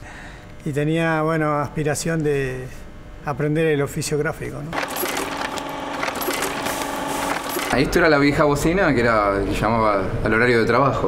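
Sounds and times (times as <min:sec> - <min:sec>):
sewing machine clattering: 0:04.7 - 0:07.9
machine hum: 0:04.7 - 0:10.2.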